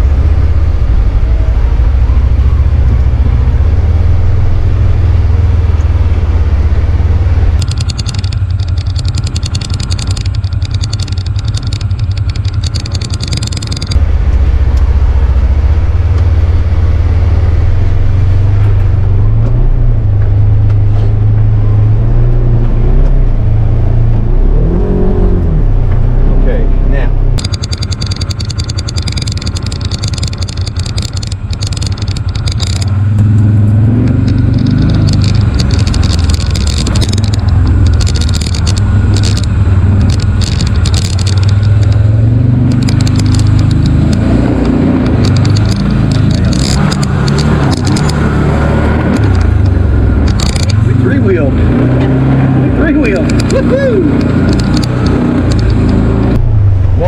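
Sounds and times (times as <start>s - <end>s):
vehicle engine under load: 0.0s - 57.0s
crackling of brush on vehicle: 27.4s - 51.0s.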